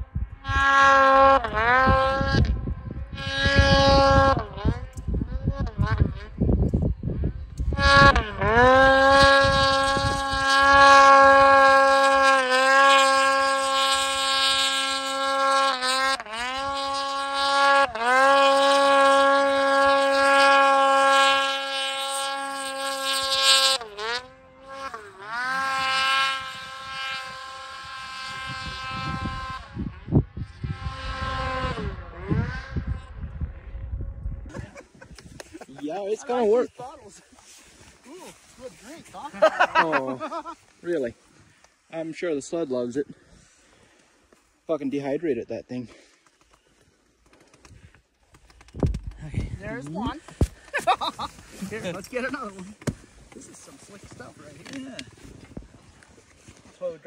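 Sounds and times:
snowmobile engine revving: 0.0s - 7.0s, 7.6s - 42.0s, 49.2s - 56.7s.

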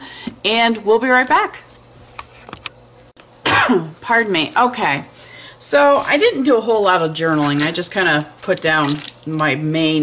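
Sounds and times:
woman coughing: 3.4s - 4.0s.

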